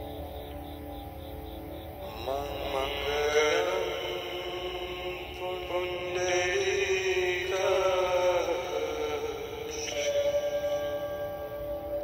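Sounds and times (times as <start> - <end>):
person chanting: 2.0 - 12.0.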